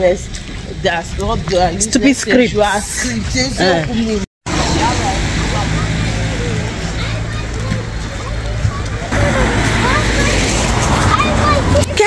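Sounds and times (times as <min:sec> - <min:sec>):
traffic rumble: 0:00.0 - 0:12.0
indistinct voices: 0:00.8 - 0:12.0.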